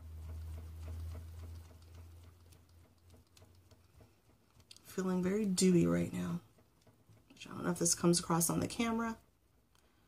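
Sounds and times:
hand fan ticking and pattering: 0.0 - 10.0.

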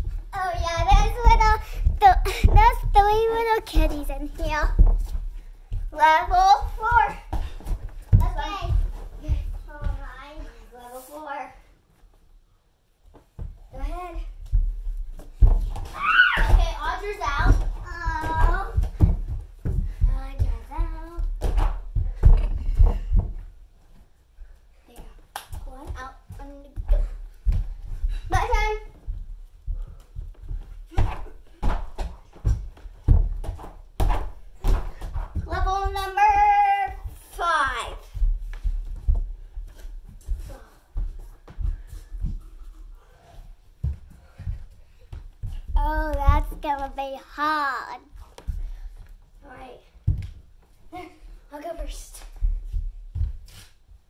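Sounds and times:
child's voice: 0.4 - 4.8, 5.9 - 7.3, 8.2 - 11.7, 16.0 - 18.9, 20.0 - 21.3, 35.4 - 38.1, 45.7 - 48.2, 50.9 - 52.2.

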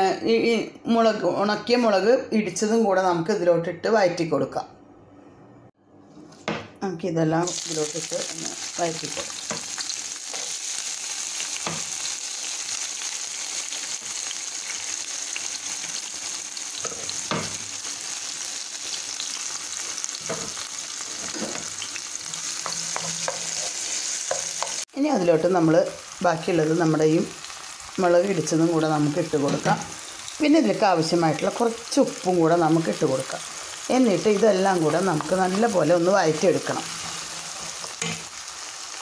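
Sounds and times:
vegetables sizzling in hot oil: 7.4 - 39.0.

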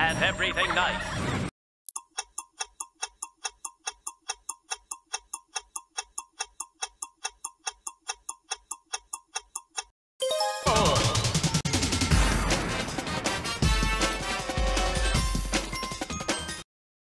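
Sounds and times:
clock ticking: 2.0 - 9.9.

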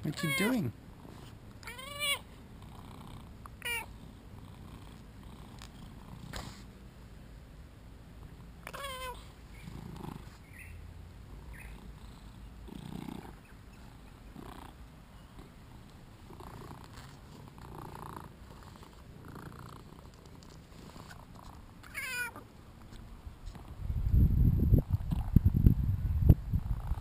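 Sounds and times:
cat purring: 2.5 - 6.7, 8.3 - 10.4, 11.4 - 21.8, 26.6 - 27.0.

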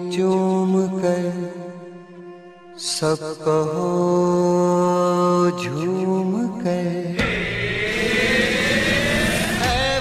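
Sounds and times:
loud rushing engine-like noise: 7.2 - 10.0.

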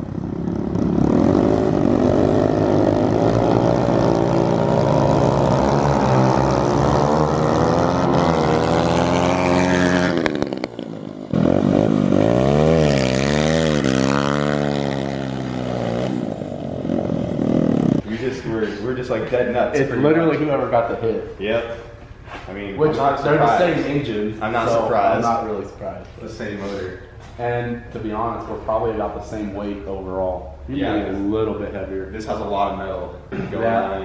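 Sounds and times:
pit bike engines revving: 0.0 - 34.0.

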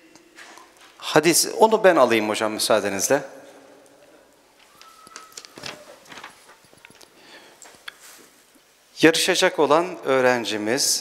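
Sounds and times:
soft rustles: 4.6 - 8.8.

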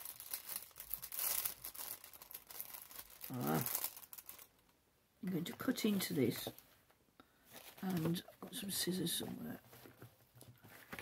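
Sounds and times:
packaging crinkling: 0.0 - 4.7.

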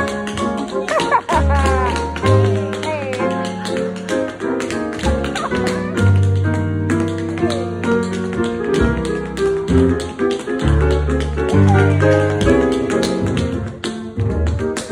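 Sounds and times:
grand piano: 0.0 - 14.9.

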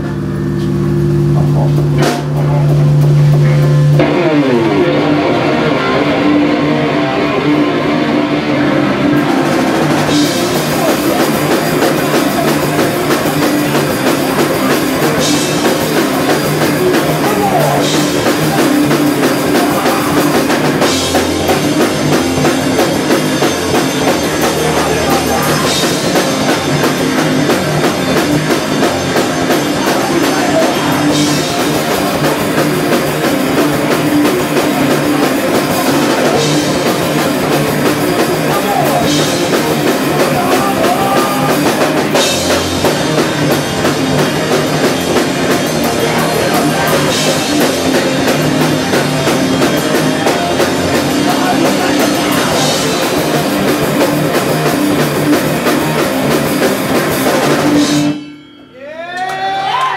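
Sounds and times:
bass guitar: 0.0 - 59.9
distorted guitar: 0.0 - 59.9
drums: 0.0 - 59.9.

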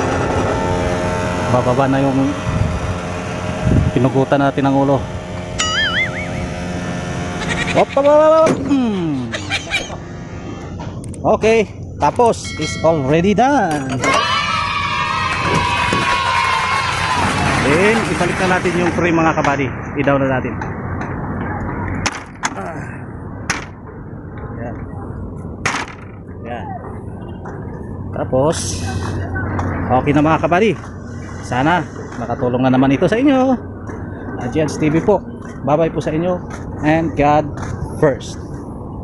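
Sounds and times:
diesel truck engine hum: 0.0 - 12.4
steady low rumble: 0.0 - 13.7, 14.6 - 39.0
wavering whistle effect: 5.6 - 6.6.

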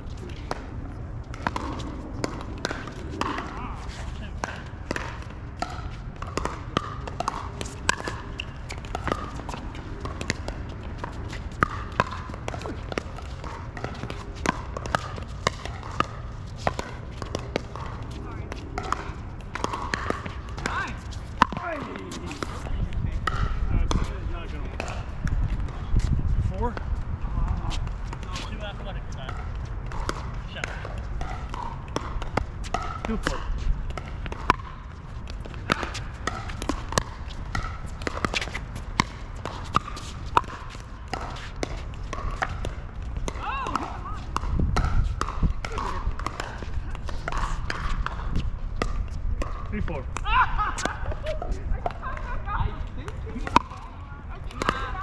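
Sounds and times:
paddles striking pickleball: 0.2 - 55.0.

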